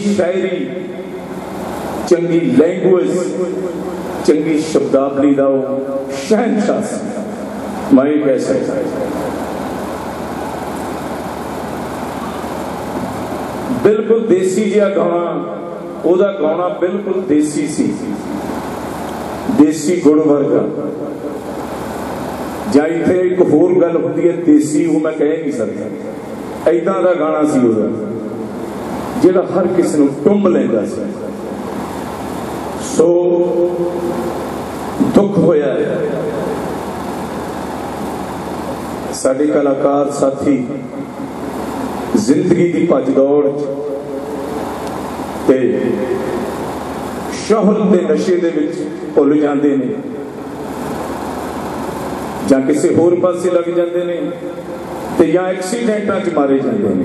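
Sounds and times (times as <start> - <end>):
steady background noise: 0.0 - 57.0
man speaking: 2.0 - 9.4, 13.7 - 18.2, 22.7 - 26.0, 29.2 - 31.3, 32.8 - 34.1, 35.0 - 36.6, 39.2 - 40.9, 42.2 - 43.9, 45.5 - 46.5, 47.3 - 50.2, 52.4 - 54.5, 55.2 - 57.0.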